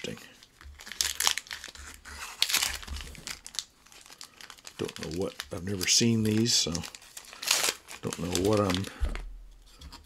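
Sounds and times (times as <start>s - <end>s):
card pack wrapper tearing and crinkling: 0.0s - 9.2s.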